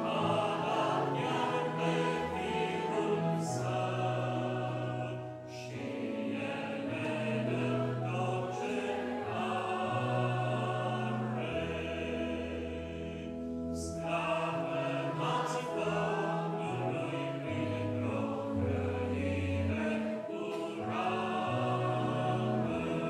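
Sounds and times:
congregation singing a hymn: 0:00.0 - 0:23.0
grand piano: 0:00.0 - 0:23.0.

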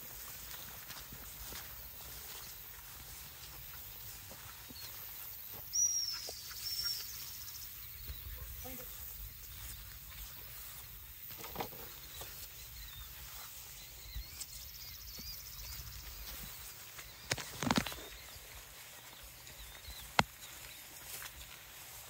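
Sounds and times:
footsteps through tall grass: 0:00.0 - 0:22.0
bird chirps: 0:00.5 - 0:21.5.

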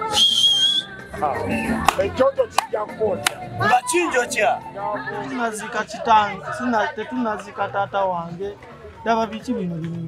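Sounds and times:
shrill whistle blast: 0:00.0 - 0:00.9
voices: 0:00.0 - 0:10.0.

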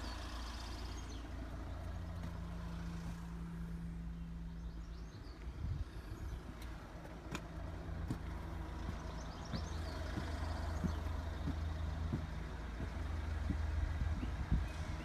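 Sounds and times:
steady low rumble: 0:01.1 - 0:15.0
footsteps on concrete: 0:06.4 - 0:14.7.

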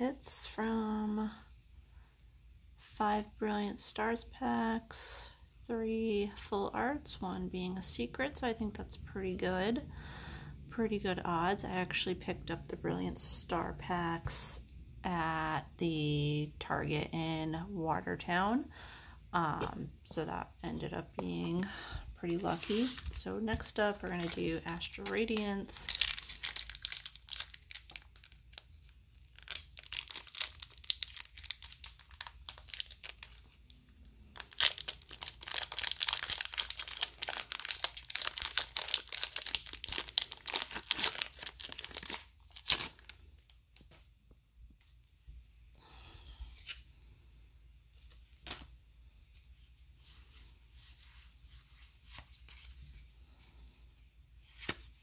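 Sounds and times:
foil wrapper tearing and crinkling: 0:24.0 - 0:28.7, 0:29.3 - 0:33.5, 0:34.3 - 0:43.5.

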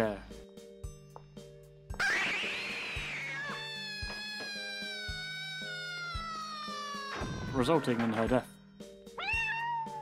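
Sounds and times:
high wail falling in pitch: 0:02.0 - 0:08.1
cat screeching: 0:02.0 - 0:08.2, 0:09.2 - 0:10.0.

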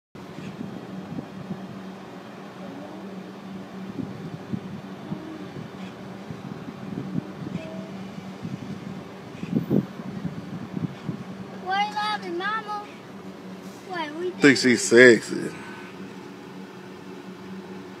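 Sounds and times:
car idling and fan hum: 0:00.2 - 0:18.0.

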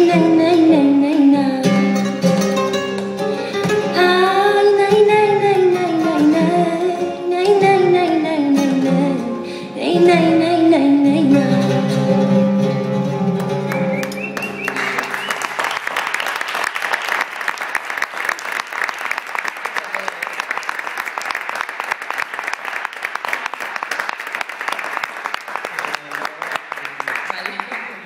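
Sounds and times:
guitar and singing: 0:00.0 - 0:14.4
audience applauding: 0:13.4 - 0:28.0.

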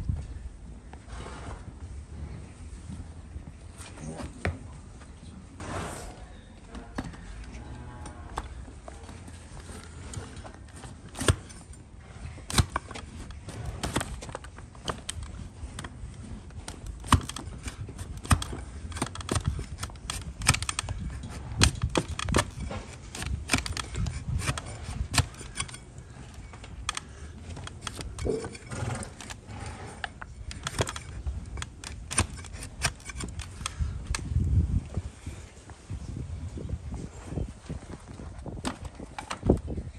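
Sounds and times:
blade shaving hoof: 0:08.1 - 0:34.2.

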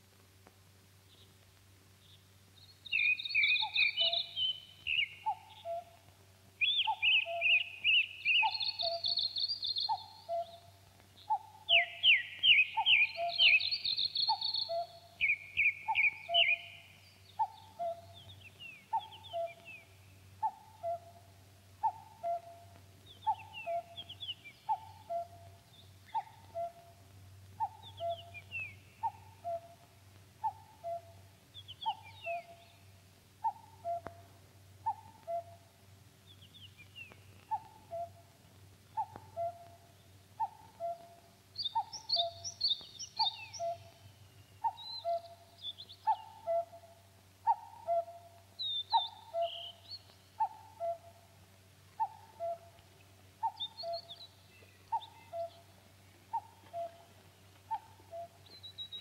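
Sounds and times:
songbird chirps: 0:00.0 - 0:59.0
cuckoo calling: 0:02.8 - 0:59.0.

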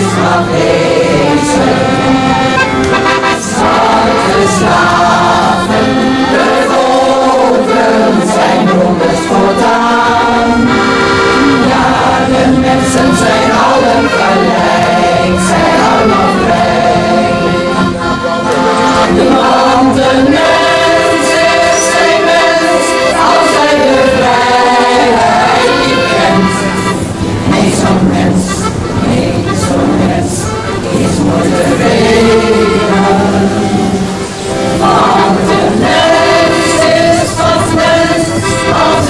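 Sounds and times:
accordion: 0:00.0 - 0:39.0
choir singing in harmony: 0:00.0 - 0:39.0.

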